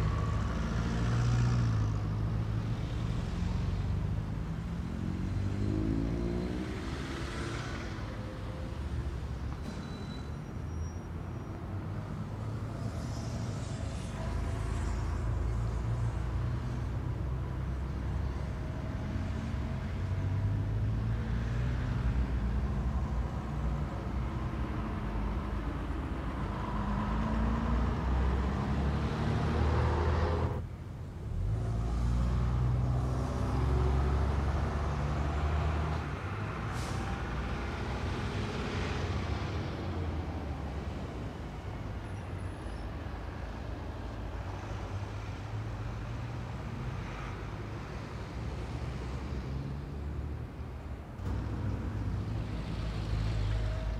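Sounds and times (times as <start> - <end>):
bus and car engines rumbling: 0.0 - 53.9.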